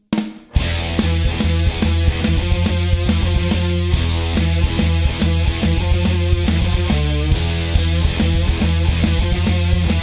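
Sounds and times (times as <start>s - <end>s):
drum kit beat: 0.0s - 10.0s
electric guitar: 0.5s - 10.0s.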